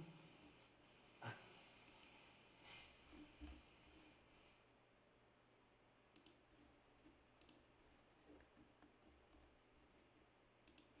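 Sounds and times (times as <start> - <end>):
soft sharp clicks: 1.8 - 2.2, 6.1 - 6.5, 7.4 - 7.7, 10.6 - 11.0.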